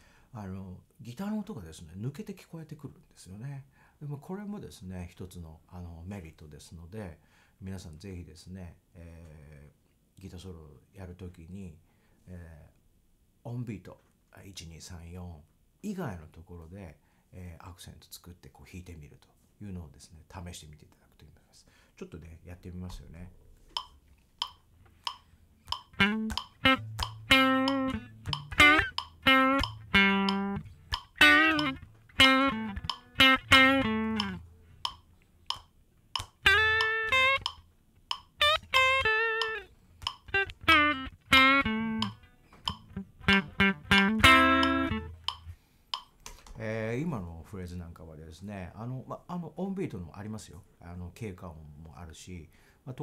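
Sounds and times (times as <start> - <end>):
light ticking beat: 23.8 - 46.3
electric guitar phrases: 25.6 - 34.9, 36.2 - 37.6, 38.3 - 45.6
low bass line: 25.7 - 34.9, 38.4 - 45.6.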